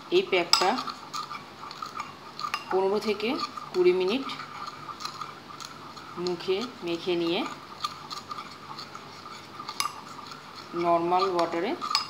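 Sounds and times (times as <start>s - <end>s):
metal spoon scraping ceramic bowl: 0.2s - 12.0s.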